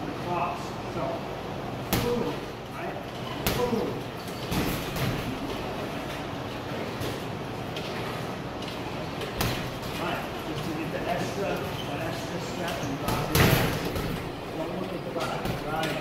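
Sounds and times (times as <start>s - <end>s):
punches thudding on heavy bag: 1.9s - 2.4s, 9.4s - 10.0s, 13.0s - 14.3s.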